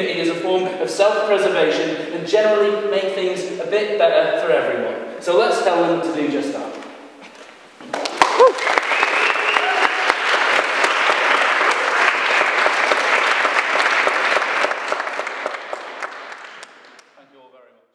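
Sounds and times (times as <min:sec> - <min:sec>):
audience applauding: 0:07.8 - 0:17.2.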